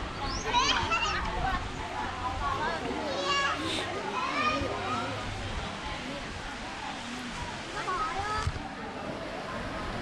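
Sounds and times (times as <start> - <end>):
children calling and playing: 0.0 - 10.0.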